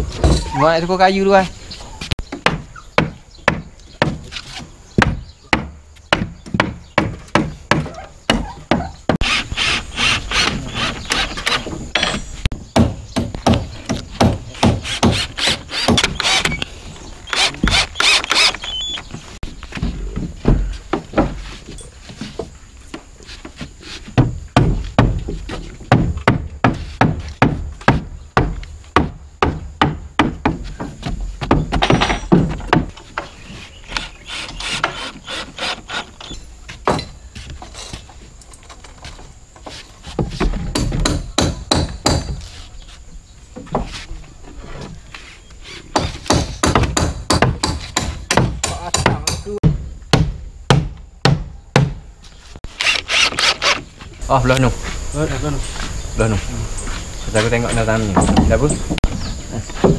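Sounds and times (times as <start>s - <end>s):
hammer knocking on wood: 2.3s - 4.2s, 5.0s - 9.2s, 24.2s - 32.9s, 40.2s - 42.4s, 46.0s - 52.0s.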